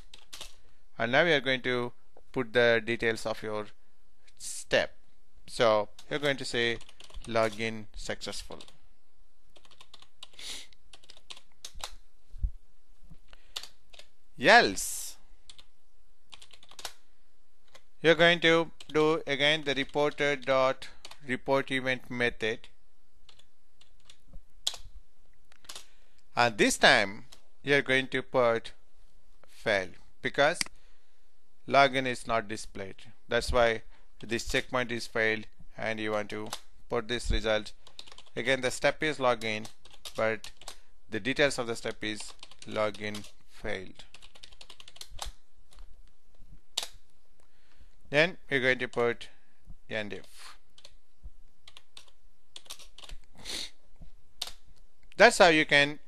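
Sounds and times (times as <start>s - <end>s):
typing on computer keyboard: 0.0s - 0.6s, 6.0s - 7.6s, 9.6s - 12.0s, 16.3s - 17.0s, 37.8s - 38.4s, 39.4s - 40.8s, 42.2s - 43.4s, 44.0s - 45.4s, 51.7s - 53.2s.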